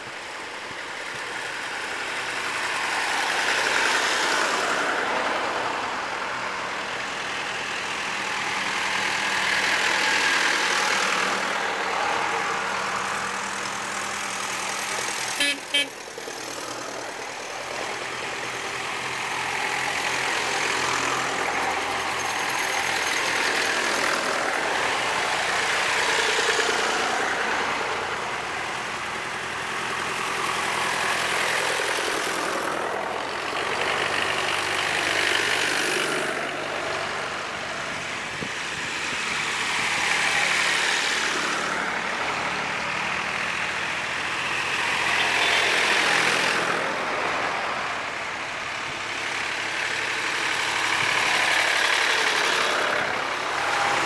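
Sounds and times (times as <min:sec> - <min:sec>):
tractor engines chugging past: 0:00.0 - 0:54.0.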